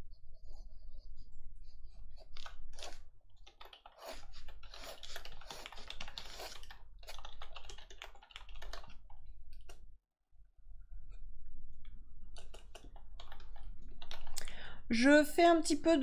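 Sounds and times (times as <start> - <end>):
pencil scratching on paper: 0.0 - 8.8.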